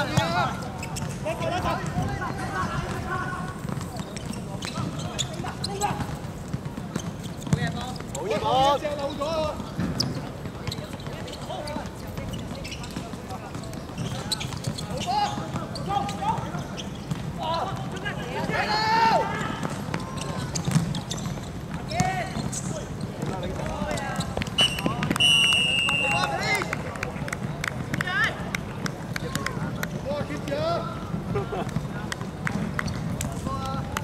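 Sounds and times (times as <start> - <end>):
players shouting: 17.4 - 20.5
referee's whistle: 24.6 - 26.4.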